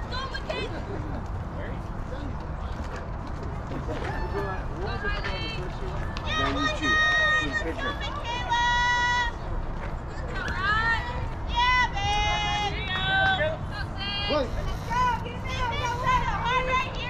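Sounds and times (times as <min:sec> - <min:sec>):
girls calling out and cheering: 0:00.0 - 0:00.8, 0:06.1 - 0:09.5, 0:10.1 - 0:17.0.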